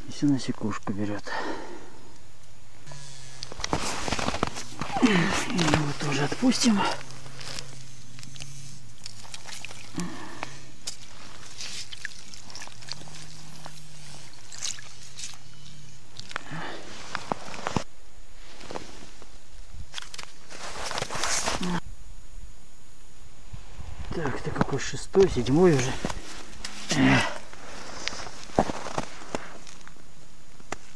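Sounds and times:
faint low hum: 0.0s - 30.9s
scraping on snow and ice: 3.5s - 15.8s, 16.8s - 21.8s, 25.4s - 29.9s
clothing rustling: 3.6s - 9.9s, 16.8s - 21.7s, 25.7s - 30.0s.

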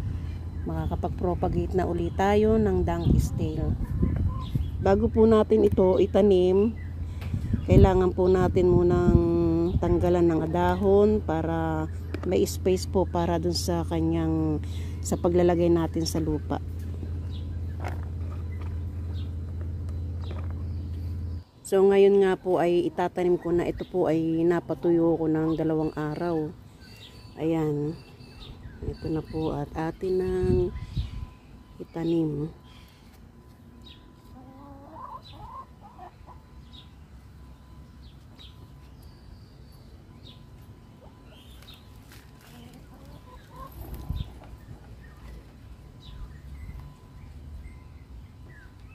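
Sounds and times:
low machine hum: 0.0s - 48.9s
bird calls: 0.1s - 5.0s, 14.6s - 21.6s, 23.2s - 48.9s.

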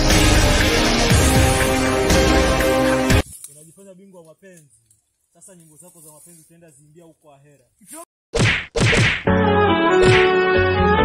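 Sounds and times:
background music: 0.0s - 3.3s, 9.2s - 11.0s
punch sound effects: 8.3s - 9.4s, 10.0s - 10.4s.

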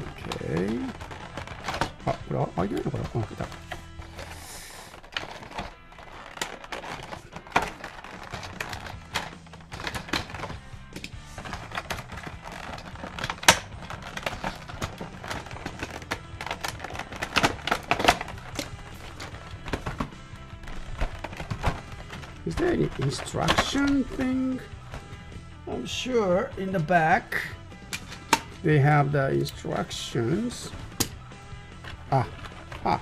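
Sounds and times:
plastic tray crackling: 0.0s - 25.2s
background music: 0.0s - 33.0s.

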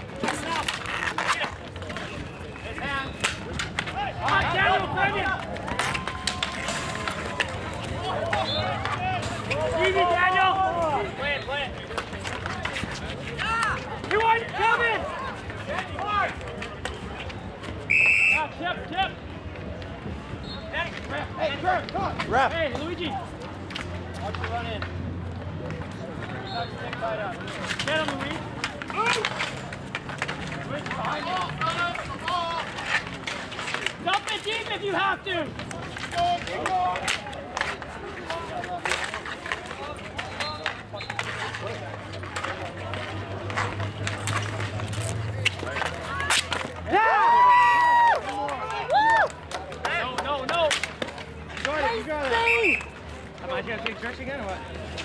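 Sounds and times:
hockey sticks and ball clacking: 0.0s - 55.0s
players calling out: 0.2s - 16.4s, 26.3s - 54.3s.

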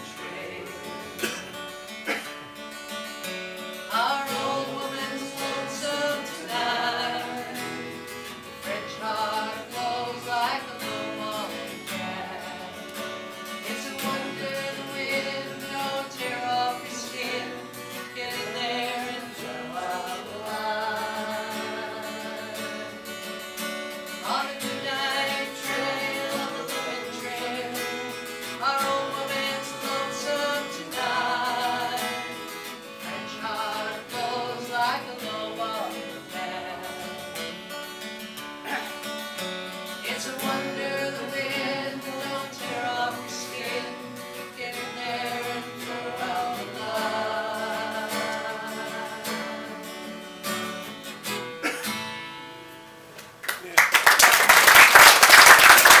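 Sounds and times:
woman singing with acoustic guitar: 0.0s - 53.1s
audience applause: 53.4s - 56.0s.

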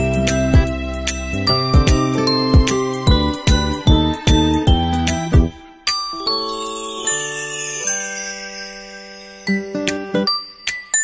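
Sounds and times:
chiming tune over a beat: 0.0s - 11.0s.

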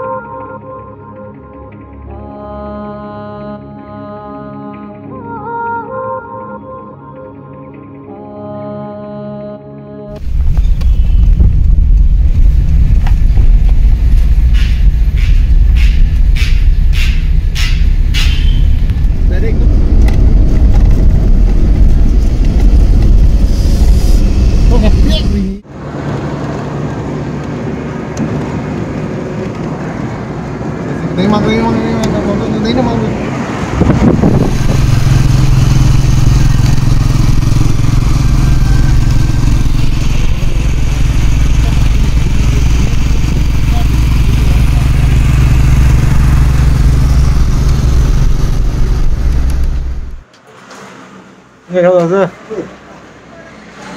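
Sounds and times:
car engine and road rumble: 10.1s - 53.9s
motorcycle engine running: 10.2s - 23.4s, 33.9s - 50.2s.

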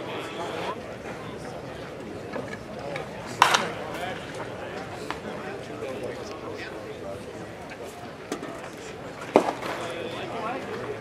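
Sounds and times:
baseball sharp crack: 3.4s - 3.8s.

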